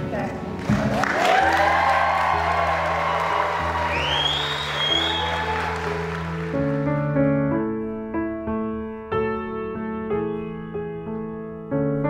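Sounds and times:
piano-like notes: 0.0s - 12.0s
soft music of held chords: 0.0s - 12.0s
guests applauding and cheering: 0.5s - 7.2s
whoops: 0.9s - 6.4s.

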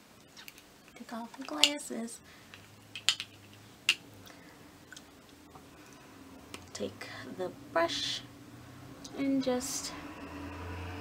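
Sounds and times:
low steady hum: 0.0s - 10.8s
small objects clicking: 2.5s - 4.0s.

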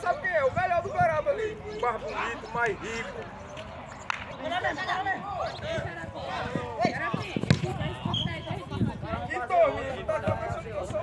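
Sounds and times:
voices calling out: 0.0s - 11.0s
football kicked thuds: 7.2s - 8.0s.

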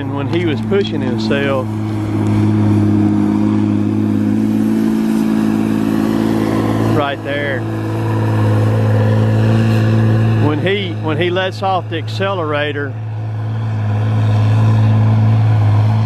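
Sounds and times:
diesel engine at full throttle: 0.0s - 16.0s.

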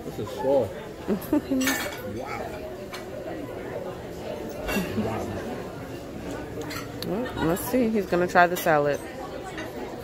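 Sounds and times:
diners chatter: 0.0s - 10.0s
dishes and cutlery clinking: 1.5s - 3.2s, 4.3s - 5.3s, 6.2s - 7.0s, 7.7s - 10.0s.

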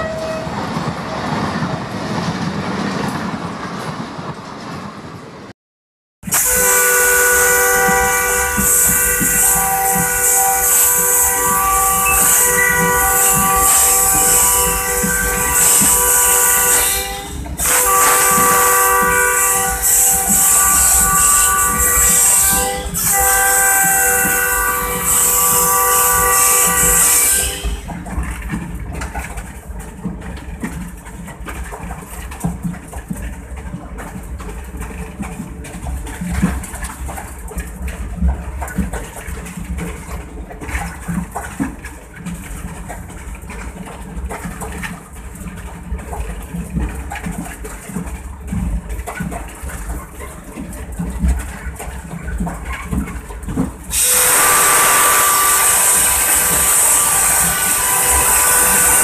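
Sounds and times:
locomotive air horn blasts: 0.0s - 0.6s, 6.2s - 28.0s, 53.9s - 59.0s
locomotive wheels rumbling on rail: 0.0s - 5.6s, 6.2s - 59.0s.

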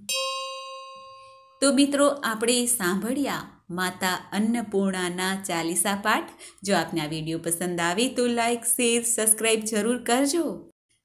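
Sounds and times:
bell ringing: 0.0s - 1.7s.

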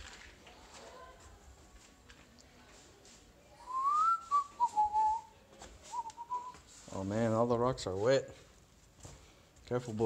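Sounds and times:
person whistling: 3.6s - 5.3s, 5.9s - 6.6s.

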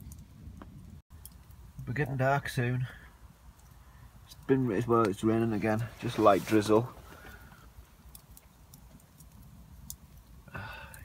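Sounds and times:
campfire crackling pops: 0.0s - 11.0s.

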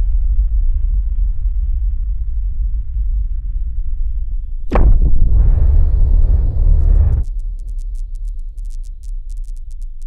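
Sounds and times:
deep synthesized drone: 0.0s - 10.0s.

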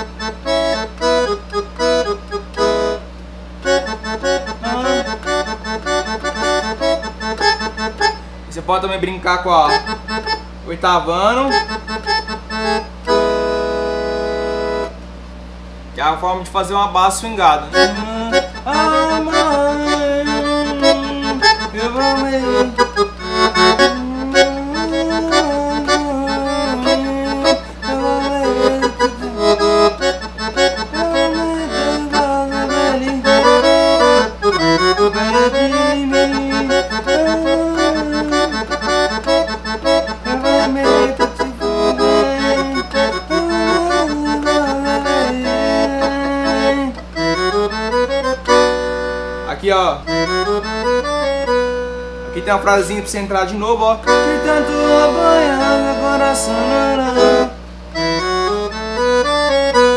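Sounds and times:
accordion playing rhythmic accompaniment: 0.0s - 15.0s, 17.1s - 59.9s.

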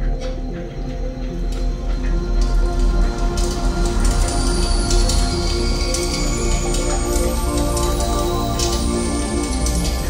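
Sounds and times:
deep electronic drone: 0.0s - 10.0s
crackling clicks: 1.4s - 10.0s.

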